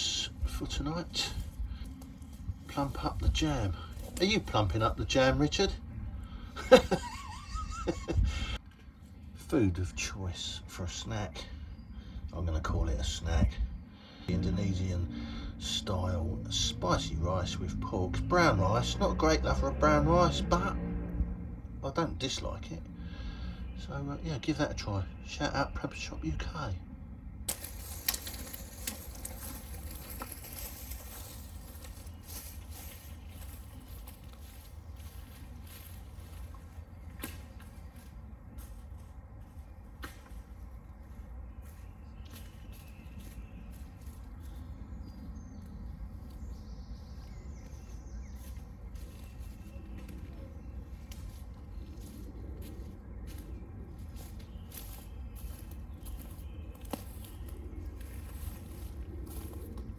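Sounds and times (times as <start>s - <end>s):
low wind rumble: 0.0s - 59.9s.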